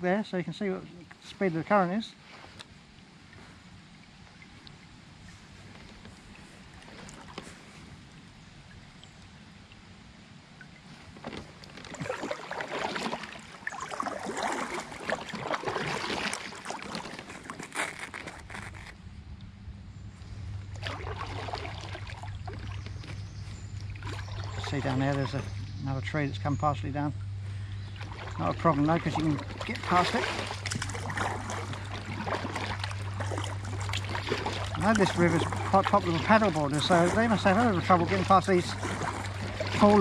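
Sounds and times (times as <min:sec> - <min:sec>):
low steady hum: 0:00.0 - 0:40.0
kayak paddle splashing water: 0:04.3 - 0:08.0, 0:10.6 - 0:18.9, 0:20.7 - 0:25.8, 0:27.6 - 0:40.0.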